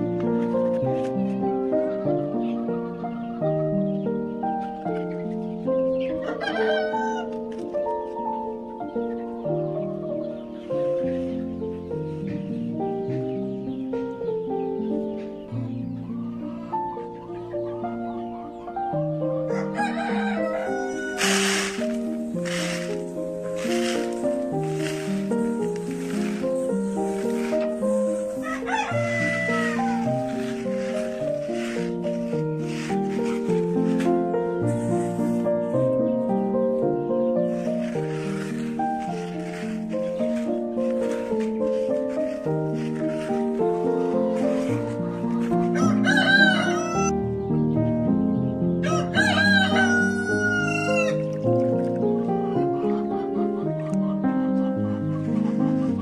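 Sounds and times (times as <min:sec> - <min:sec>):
background music: 0:00.0 - 0:56.0
rooster crowing: 0:06.2 - 0:07.4, 0:19.5 - 0:21.9, 0:28.1 - 0:30.5, 0:45.8 - 0:47.2, 0:48.8 - 0:51.2.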